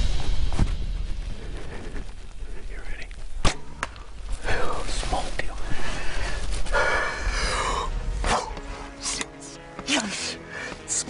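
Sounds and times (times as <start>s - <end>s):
bow shot crack: 3.2s - 4.2s.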